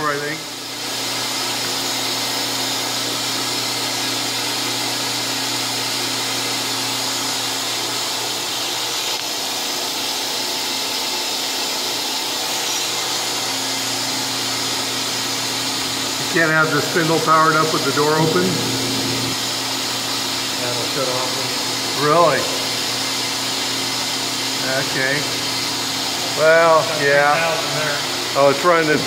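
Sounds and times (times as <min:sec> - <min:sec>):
machine spindle whirring: 0:00.0 - 0:29.0.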